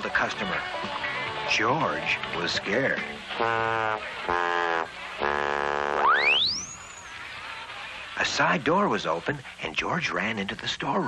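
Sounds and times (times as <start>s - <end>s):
cartoon horn blasts: 3.4s - 6.8s
rising cartoon whistle: 5.8s - 7.2s.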